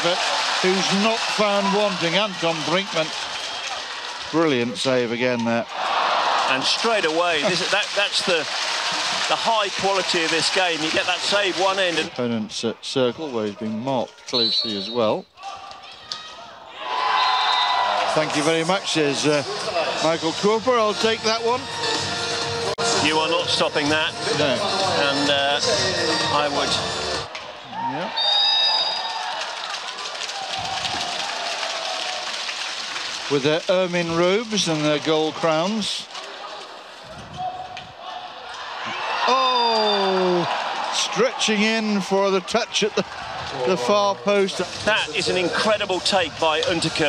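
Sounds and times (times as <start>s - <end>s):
indoor crowd cheering: 0.0s - 12.2s, 15.4s - 20.4s, 24.5s - 47.0s
low arena noise: 24.2s - 47.0s.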